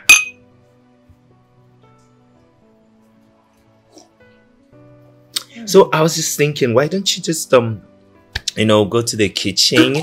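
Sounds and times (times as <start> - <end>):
wine glasses clinking: 0.0 - 0.5.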